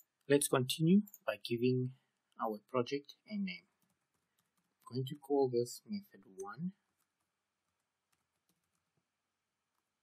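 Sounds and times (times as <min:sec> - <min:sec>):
computer keyboard keystrokes: 0:08.1 - 0:08.9.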